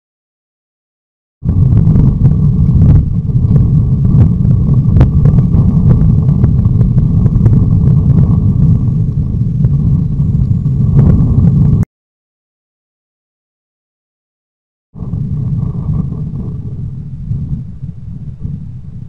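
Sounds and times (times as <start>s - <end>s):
loud low rumble: 1.4s - 11.9s, 15.0s - 19.0s.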